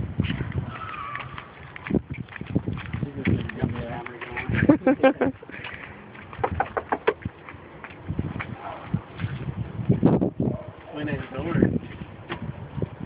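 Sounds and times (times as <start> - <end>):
footsteps on concrete: 0.0 - 10.9.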